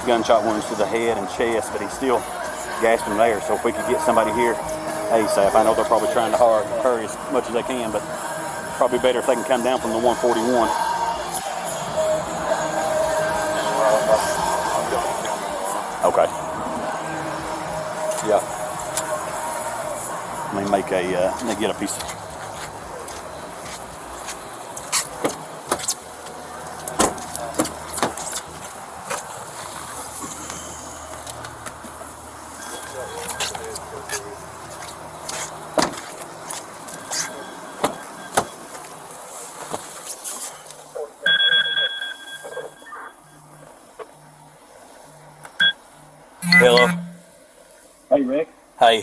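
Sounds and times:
footsteps: 0:21.4 - 0:32.2
camera rubbing against clothing: 0:22.0 - 0:25.2
high steady beep: 0:41.2 - 0:43.4, 0:45.6 - 0:45.8, 0:46.4 - 0:47.3
low repeating pulse: 0:46.4 - 0:47.3.

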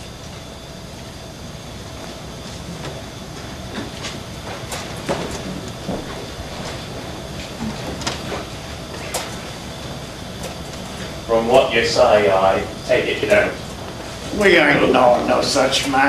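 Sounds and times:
recording hiss and hum: 0:00.0 - 0:16.0
footsteps on stage: 0:02.0 - 0:09.4.

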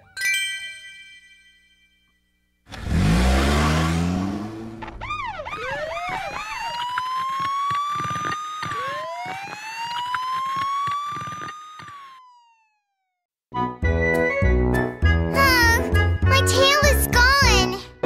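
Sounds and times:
rising engine rev: 0:02.7 - 0:06.3
cartoon police siren: 0:04.6 - 0:13.2.

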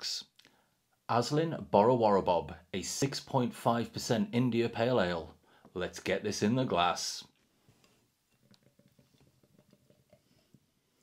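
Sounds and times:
beer pouring into a glass: 0:08.3 - 0:10.6.

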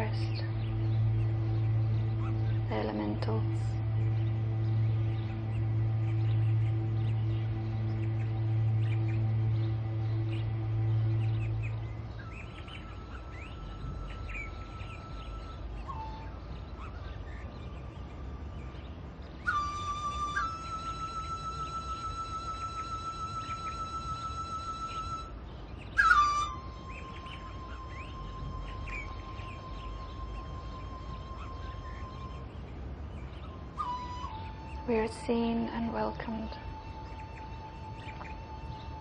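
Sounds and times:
long steady high tone: 0:00.0 - 0:39.0
low steady rumble: 0:00.0 - 0:39.0
small birds chirping: 0:00.0 - 0:39.0.

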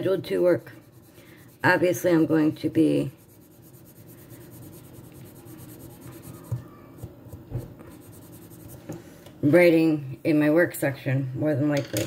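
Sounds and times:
pencil scratching on paper: 0:00.0 - 0:06.8, 0:07.6 - 0:08.9.

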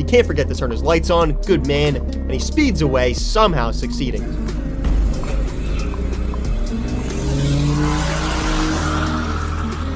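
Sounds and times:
background music: 0:00.0 - 0:09.9
car engine revving: 0:04.2 - 0:09.9.

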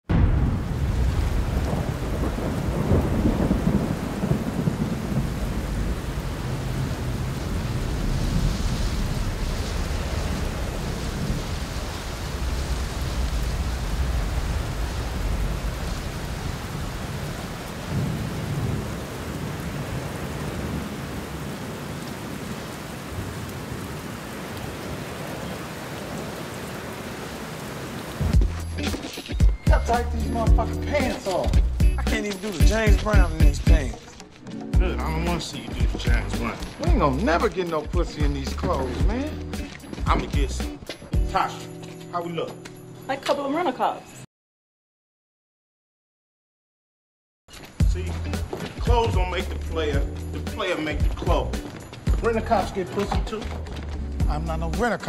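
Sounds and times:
thunder rumbling: 0:00.1 - 0:27.2, 0:34.8 - 0:40.8
steady rain: 0:00.1 - 0:41.6, 0:47.5 - 0:55.0.

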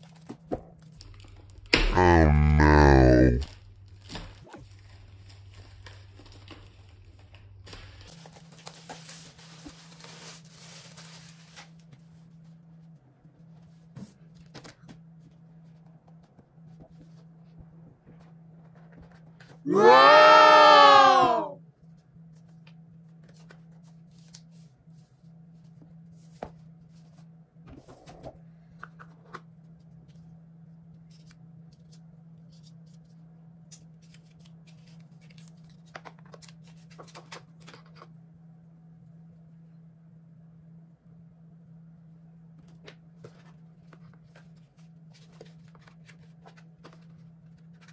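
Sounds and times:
plastic wrap crinkling: 0:03.4 - 0:11.9
paper rustling: 0:07.7 - 0:12.1, 0:33.8 - 0:38.1, 0:42.8 - 0:47.9.

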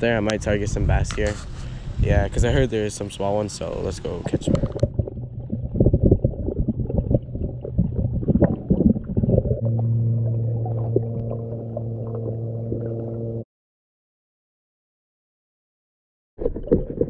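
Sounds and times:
low hum: 0:04.1 - 0:13.5.

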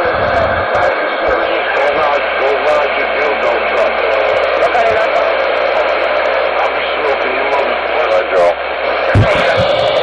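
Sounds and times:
distorted radio voice: 0:00.0 - 0:10.0
radio hiss: 0:00.0 - 0:10.0
low thuds: 0:09.2 - 0:10.0.

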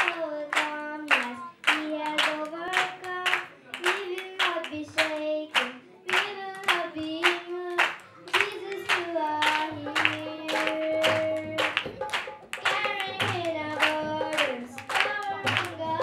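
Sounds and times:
girl singing into microphone: 0:00.0 - 0:16.0
hand claps: 0:00.0 - 0:16.0.

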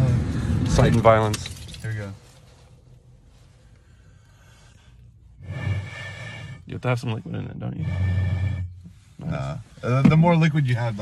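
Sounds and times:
blowing across a bottle: 0:05.3 - 0:06.7, 0:07.7 - 0:09.5
car cabin hum: 0:06.6 - 0:11.0.

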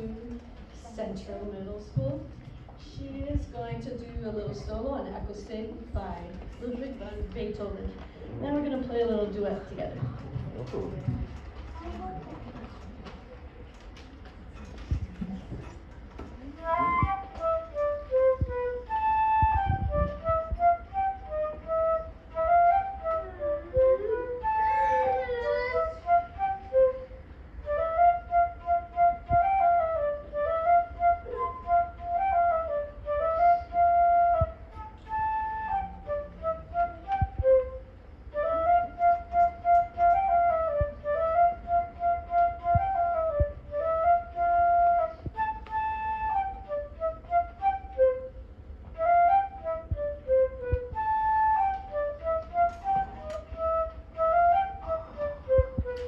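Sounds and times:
solo flute melody: 0:16.4 - 0:56.0.

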